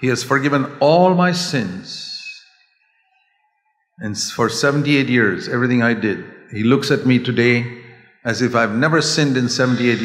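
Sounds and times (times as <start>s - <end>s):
man's voice with echo: 0.0s - 2.5s, 4.0s - 10.0s.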